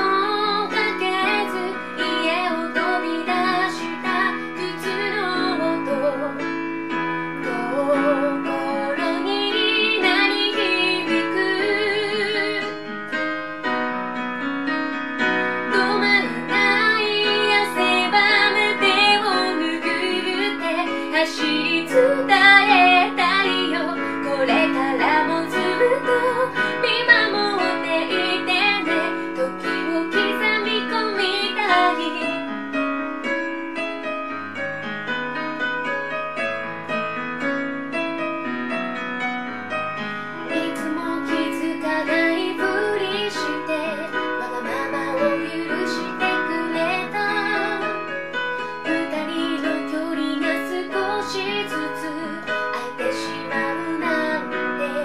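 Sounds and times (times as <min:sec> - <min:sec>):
woman singing: 0:00.0 - 0:06.6, 0:07.4 - 0:12.9, 0:15.6 - 0:32.5, 0:40.4 - 0:55.0
piano chords: 0:00.0 - 0:55.0.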